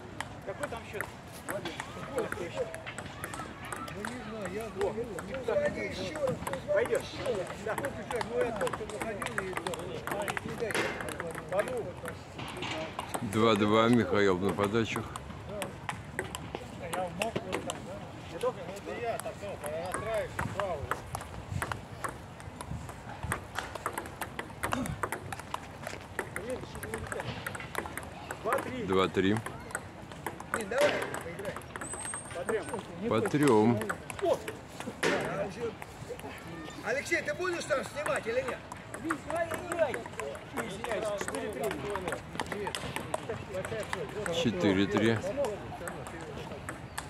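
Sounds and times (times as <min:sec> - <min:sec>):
table tennis ball clicking: 0:00.2 - 0:12.2, 0:19.2 - 0:34.6, 0:37.6 - 0:47.0.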